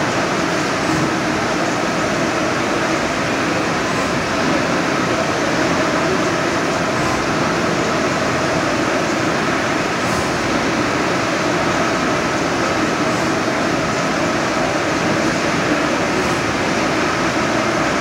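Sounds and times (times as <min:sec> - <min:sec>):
inkjet printer mechanical whir: 0:00.5 - 0:18.0.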